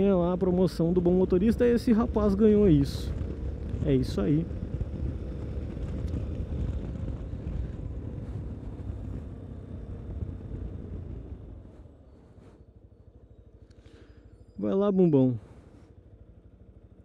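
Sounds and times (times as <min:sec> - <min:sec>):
motorcycle engine running: 0:00.0 - 0:17.0
wind noise on microphone: 0:01.5 - 0:11.8.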